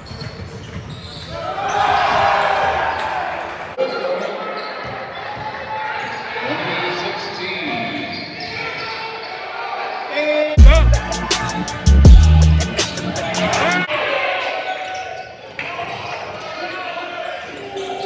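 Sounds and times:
crowd voices: 1.4 - 18.0
loud bass-heavy music: 10.6 - 13.9.

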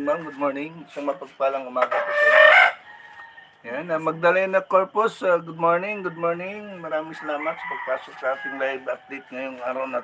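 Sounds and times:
rooster crowing: 2.1 - 3.6, 5.9 - 9.6.

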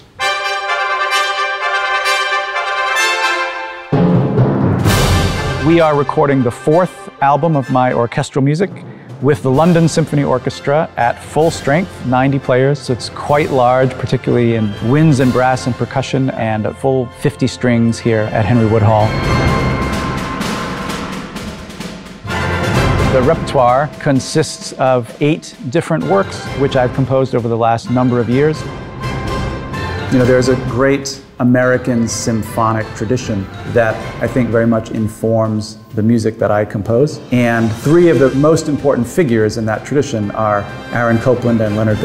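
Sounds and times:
percussion strokes: 0.0 - 16.7, 17.3 - 36.0, 37.1 - 42.0
symphony orchestra playing: 0.0 - 35.9, 37.2 - 42.0
brass section playing loud chord: 0.2 - 8.1, 18.2 - 27.0.

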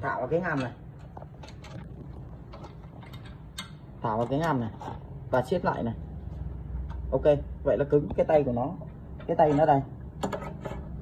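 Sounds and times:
metal bracket clicks and taps: 2.6 - 4.6.

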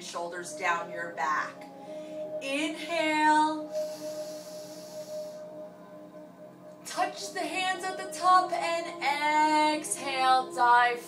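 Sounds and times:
quiet background music tone: 0.0 - 11.0
breath drawn in: 3.7 - 5.6.

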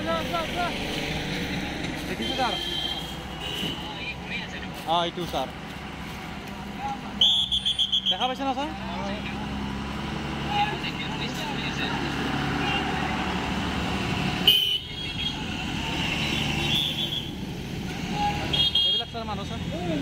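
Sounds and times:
people talking: 0.0 - 0.9
vehicle engine noise: 0.0 - 20.0.

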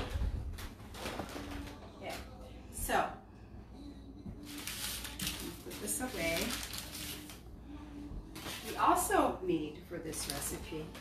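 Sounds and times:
paper wrapping crinkling: 4.4 - 7.4.

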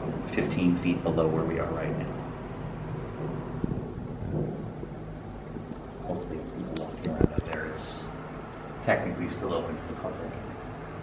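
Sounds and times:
low rumble and hum: 0.0 - 11.0.

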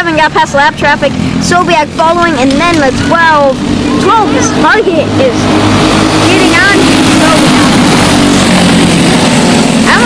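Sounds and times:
kart engines running: 0.0 - 10.0.

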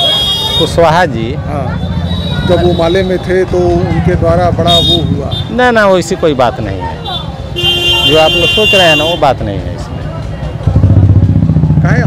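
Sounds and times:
motorcycle engine running: 1.3 - 5.5, 9.4 - 12.0.

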